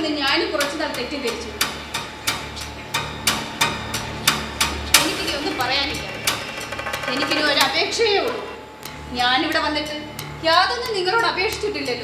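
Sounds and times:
sharp evenly spaced knocks: 0.0s - 11.9s.

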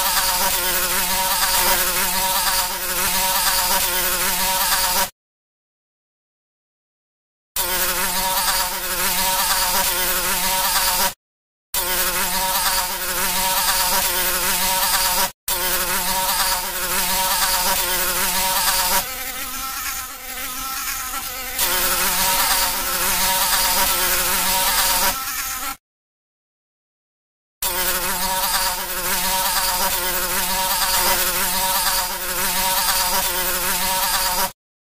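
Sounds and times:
fly buzzing: 0.0s - 5.1s, 7.6s - 11.2s, 11.8s - 25.8s, 27.6s - 34.6s.

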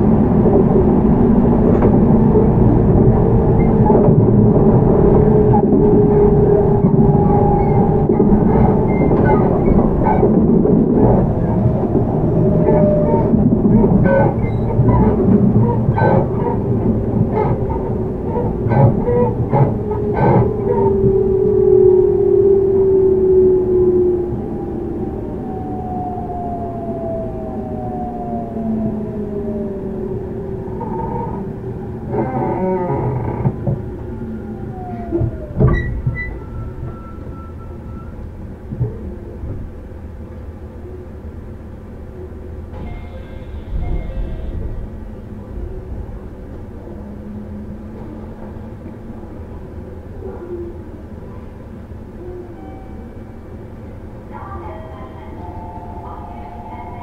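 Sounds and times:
steady train hum: 0.0s - 57.0s
rail-joint clicks: 0.1s - 21.2s, 42.7s - 45.1s.

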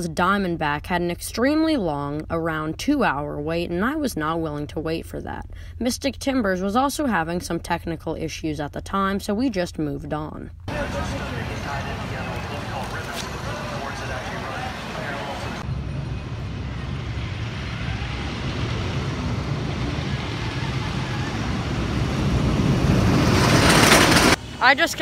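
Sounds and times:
faint voices: 10.7s - 15.7s
roller coaster rumbling on track: 10.7s - 25.0s.

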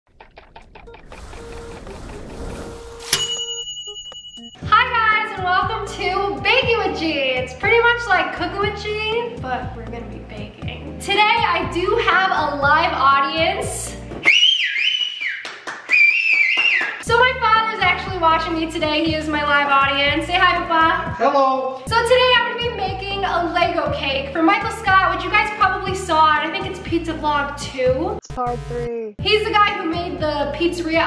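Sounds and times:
rising whoosh: 0.9s - 3.2s
bright ding: 3.0s - 4.6s
person whistling a tune: 14.2s - 17.0s.

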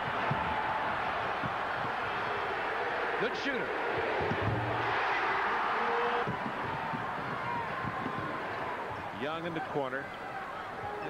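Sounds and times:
arena crowd noise: 0.0s - 11.0s.

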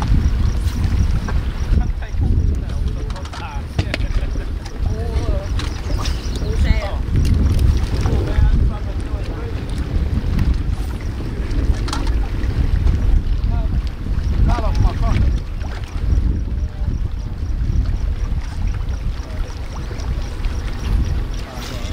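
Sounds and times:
water lapping on rocky shore: 0.0s - 21.9s
wind buffeting microphone: 0.0s - 21.9s.

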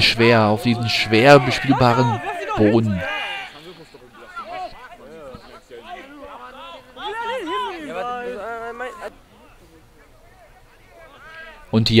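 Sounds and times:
men shouting across a pitch: 0.0s - 12.0s.

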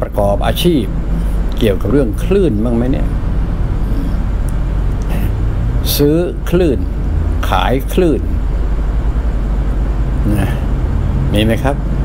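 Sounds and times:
man speaking: 0.0s - 0.9s, 1.6s - 3.2s, 5.1s - 8.4s, 10.2s - 10.7s, 11.3s - 11.8s
low rumble with hiss: 0.0s - 12.0s.

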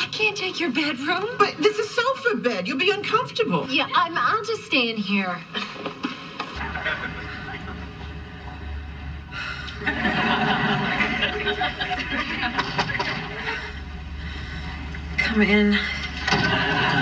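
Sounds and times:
steady low hum: 0.0s - 17.0s
studio audience laughter: 6.0s - 8.4s, 9.8s - 13.9s, 16.3s - 17.0s.

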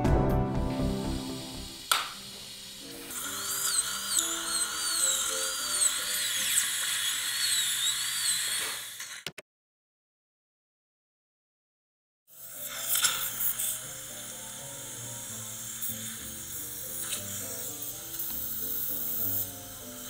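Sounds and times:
music: 0.0s - 6.6s, 12.3s - 20.0s
dental drill whining: 1.1s - 9.3s, 12.3s - 20.0s.

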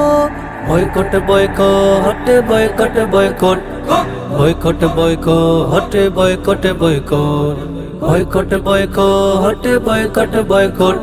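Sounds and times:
low bass drone: 0.0s - 11.0s
male voices singing in harmony: 0.0s - 11.0s.

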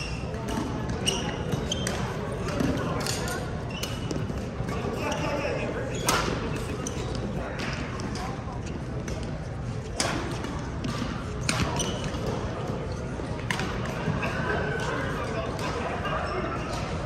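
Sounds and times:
echoing chatter: 0.0s - 17.0s
shoe squeaks: 1.0s - 2.2s, 3.6s - 7.2s, 11.7s - 12.2s.

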